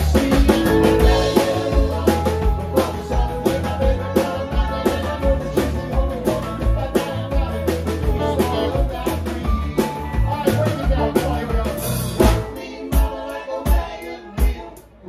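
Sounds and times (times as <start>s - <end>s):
live band playing: 0.0s - 15.0s.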